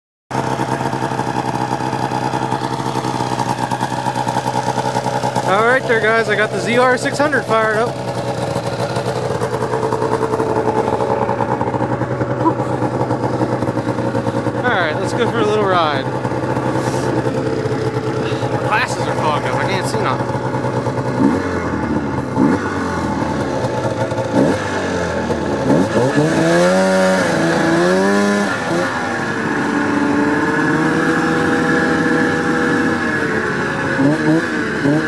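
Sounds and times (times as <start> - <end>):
snowmobile engine idling: 0.3 - 35.0.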